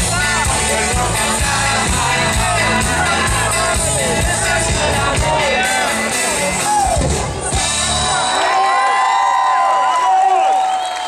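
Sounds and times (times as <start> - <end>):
person singing: 0.0 - 7.0
live band music: 0.0 - 8.8.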